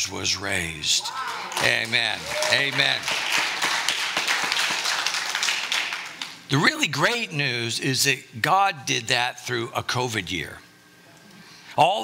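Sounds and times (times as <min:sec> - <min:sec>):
crowd applauding: 0:01.2 - 0:06.4.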